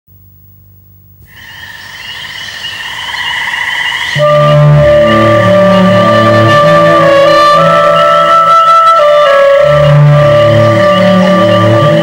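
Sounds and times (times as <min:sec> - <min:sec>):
faint low hum: 0:00.1 - 0:04.6
high warbling trill: 0:01.2 - 0:12.0.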